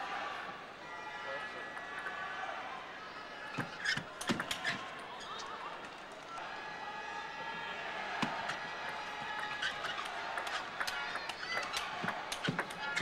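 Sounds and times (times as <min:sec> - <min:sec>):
arena crowd hubbub: 0:00.0 - 0:13.0.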